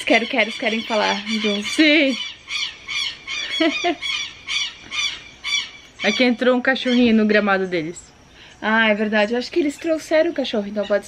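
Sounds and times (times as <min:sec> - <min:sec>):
birds squawking calls: 0:00.0 - 0:11.0.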